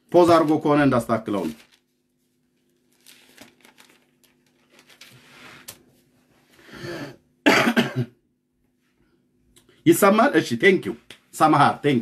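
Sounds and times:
man coughing: 6.9s - 8.2s.

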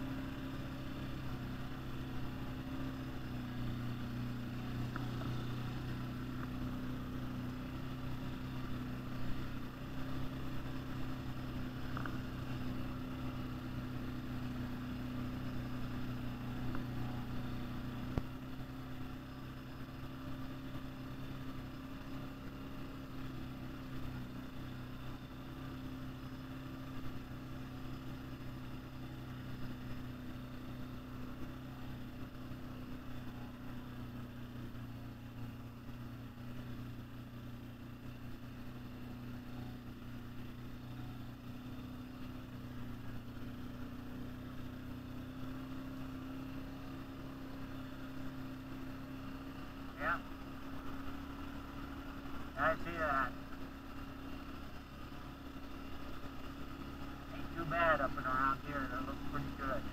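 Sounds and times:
atv engine running: 0.0s - 59.9s.

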